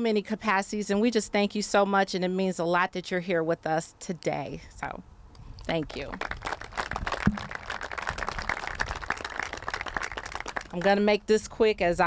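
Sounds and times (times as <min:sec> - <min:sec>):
audience applauding: 0:06.2 - 0:10.9.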